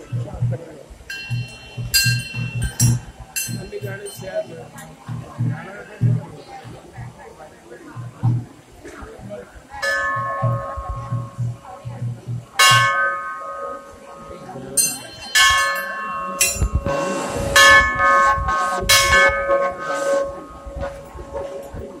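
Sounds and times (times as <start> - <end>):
temple bells ringing: 1.1 - 6.3, 9.8 - 22.0.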